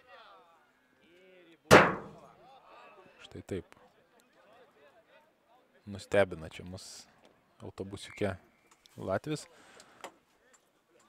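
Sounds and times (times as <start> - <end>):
loud sharp thump: 1.7 - 2.2.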